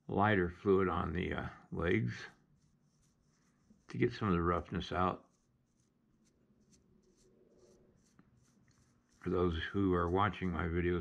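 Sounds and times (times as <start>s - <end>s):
soft brush strokes on clay: 0.7s - 11.0s.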